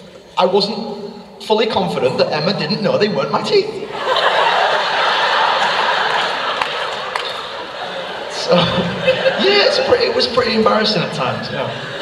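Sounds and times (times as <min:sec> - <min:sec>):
audience laughing: 0:03.8 - 0:12.0.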